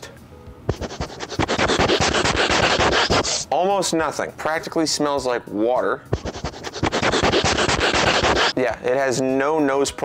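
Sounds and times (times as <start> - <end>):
dog sniffing: 0.7 - 3.4, 6.1 - 8.5.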